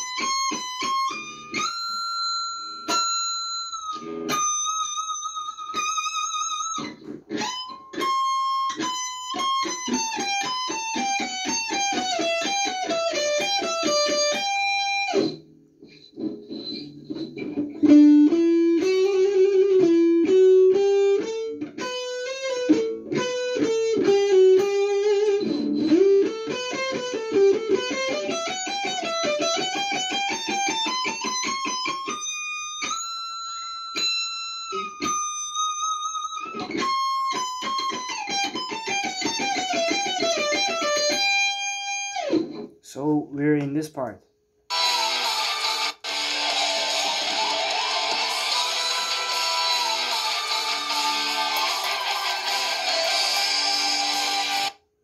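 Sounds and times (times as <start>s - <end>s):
electric guitar shred solo: 0.0s - 15.4s, 16.2s - 42.7s, 44.7s - 54.8s.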